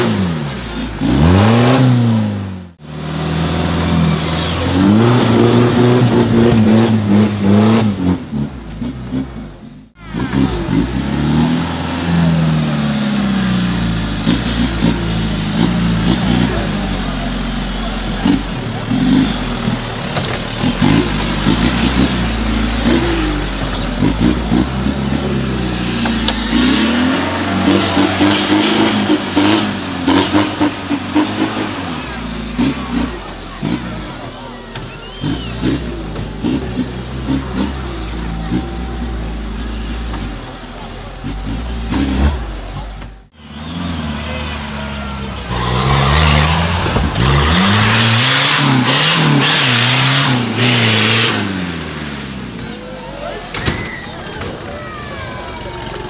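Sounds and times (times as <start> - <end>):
buggy engine revving: 0.0 - 56.0
crowd voices: 0.0 - 56.0.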